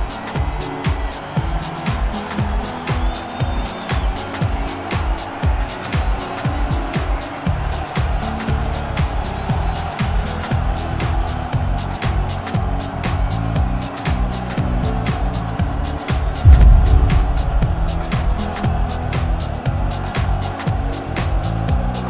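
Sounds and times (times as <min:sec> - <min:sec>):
deep kick drums: 0:16.4 - 0:19.8.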